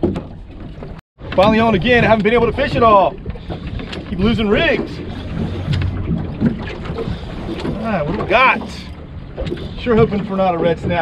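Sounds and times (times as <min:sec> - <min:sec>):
water lapping at boat hull: 0:00.0 - 0:11.0
wind buffeting microphone: 0:00.7 - 0:11.0.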